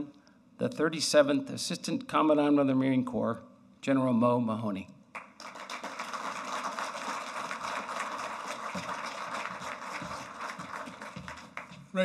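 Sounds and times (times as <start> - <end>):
audience applauding: 5.2 - 12.0.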